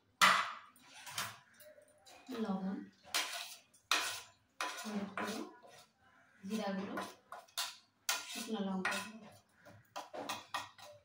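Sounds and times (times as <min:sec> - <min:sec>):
spoon scraping a plate: 0:00.7 - 0:11.0.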